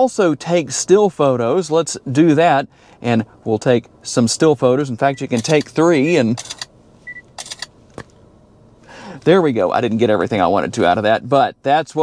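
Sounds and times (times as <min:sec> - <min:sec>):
short beep: 0:07.0 - 0:07.3
camera shutter clicks: 0:07.4 - 0:07.7.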